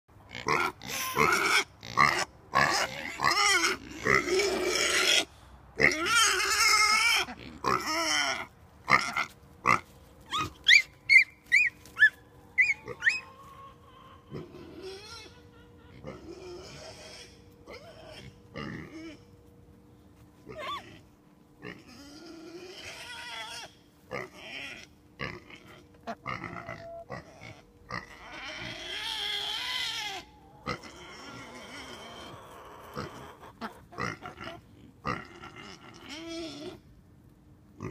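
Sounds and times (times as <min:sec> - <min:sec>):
pigs grunting: 0:00.3 - 0:09.8, 0:12.6 - 0:19.3, 0:20.4 - 0:36.8.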